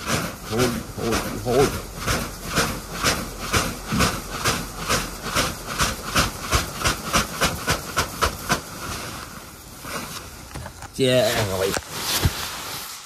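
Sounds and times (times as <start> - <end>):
grain pouring into a sack: 0.0 - 13.0.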